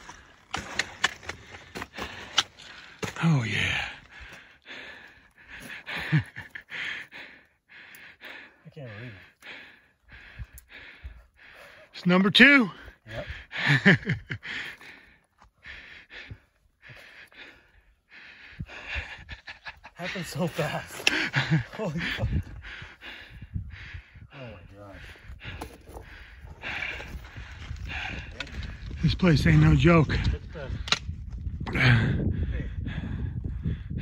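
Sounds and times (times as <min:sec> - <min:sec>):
man breathing hard: 0:00.0 - 0:29.0, 0:30.2 - 0:34.0.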